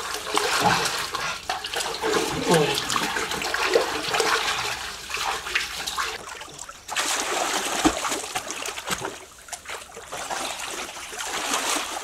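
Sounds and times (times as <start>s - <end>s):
pool water splashing: 0.0s - 12.0s.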